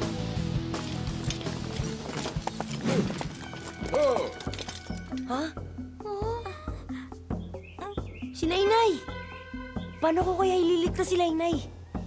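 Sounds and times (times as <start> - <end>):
background music: 0.0 - 12.0
horse hooves clip-clopping: 0.6 - 5.2.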